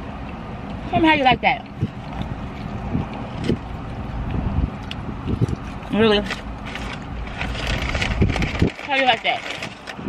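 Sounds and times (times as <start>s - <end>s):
low car cabin rumble: 0.0s - 10.0s
paper bags rustling: 6.1s - 10.0s.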